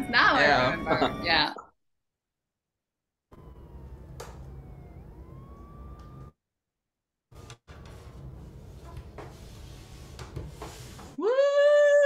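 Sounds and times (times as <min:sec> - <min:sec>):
slow wailing tone: 0:00.0 - 0:01.6, 0:03.3 - 0:06.3.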